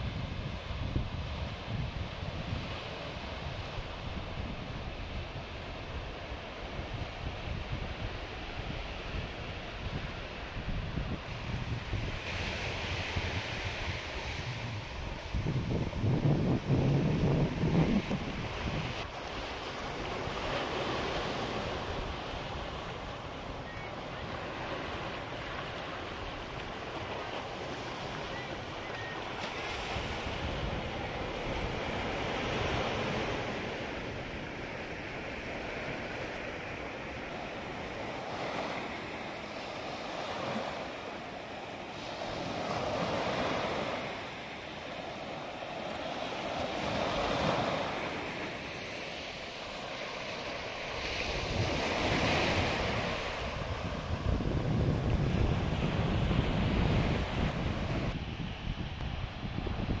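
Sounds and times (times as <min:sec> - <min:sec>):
wind buffeting microphone: 0:00.0 - 0:40.6, 0:50.5 - 1:00.0
surf breaking on shore: 0:11.2 - 1:00.0.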